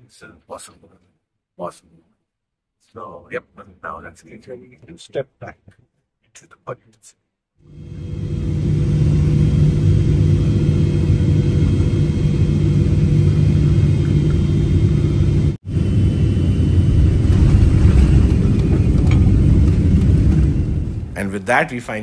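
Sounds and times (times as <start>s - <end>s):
jet engine roar and rushing air: 7.7s - 21.5s
low cabin hum: 7.7s - 22.0s.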